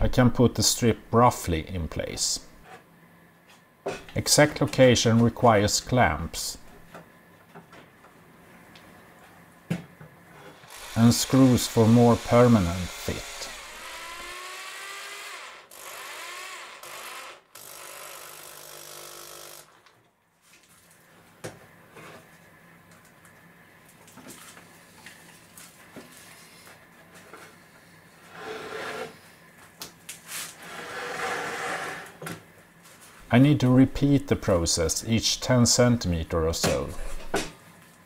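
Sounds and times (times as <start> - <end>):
power drill driving screws: 10.6 - 19.8
board scraping: 28.3 - 29.2, 30.3 - 32.2.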